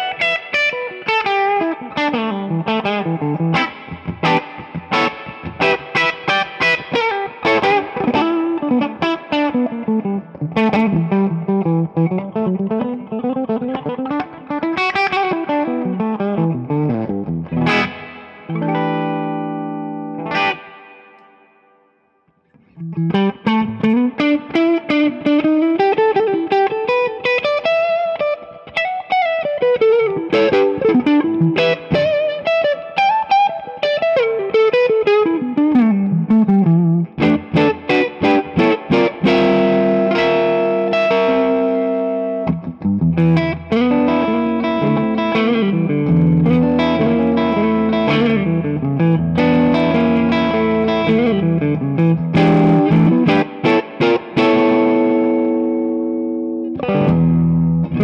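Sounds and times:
electric guitar chord ringing: 0.0 - 22.0, 22.7 - 58.0.

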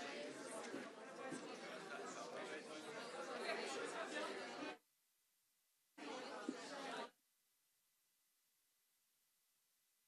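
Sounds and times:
crowd chattering in a hall: 0.0 - 4.8, 6.0 - 7.2.

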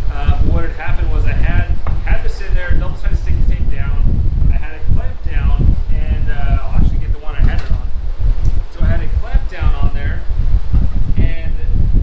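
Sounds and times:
person talking loudly: 0.0 - 7.8, 8.7 - 10.2
steady low hum: 0.0 - 12.0.

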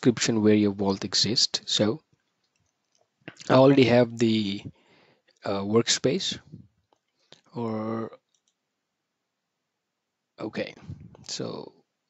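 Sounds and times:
person speaking: 0.0 - 2.0, 3.3 - 4.7, 5.4 - 6.6, 7.5 - 8.2, 10.4 - 11.8
computer mouse clicks: 8.3 - 8.6.

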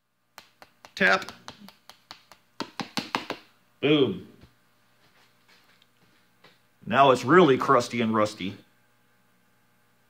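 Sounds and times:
spice shaker tapping: 0.4 - 3.5.

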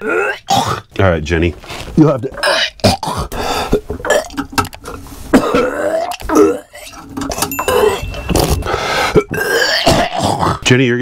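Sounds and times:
person gagging and coughing: 0.0 - 0.9, 2.4 - 3.4, 5.3 - 6.9, 9.1 - 10.6.

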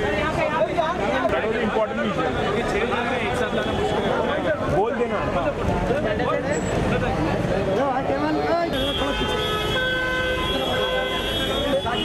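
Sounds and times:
voices: 0.0 - 12.0
car horn long blast: 8.7 - 12.0.

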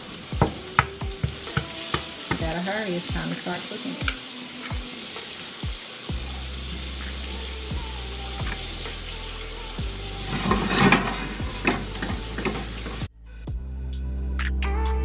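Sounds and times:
food sizzling in a pan: 0.0 - 13.1
background music with low bass: 0.0 - 15.0.

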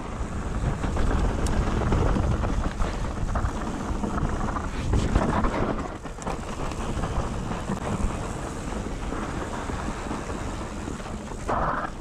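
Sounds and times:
tyres rolling on dirt trail: 0.0 - 12.0
wind on microphone: 0.0 - 12.0.

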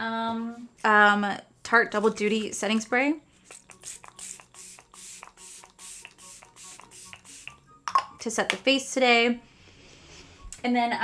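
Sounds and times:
spray bottle spritzes: 3.4 - 7.6.

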